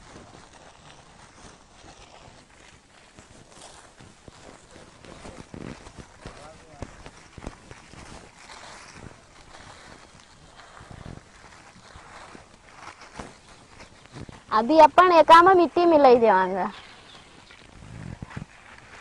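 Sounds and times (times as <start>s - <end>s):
soil and plastic bag crunching: 0.0s - 19.0s.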